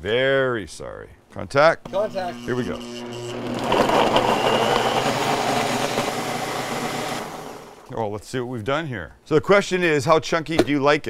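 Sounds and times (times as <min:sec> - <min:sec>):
blender running at high speed: 0:01.9 - 0:07.9.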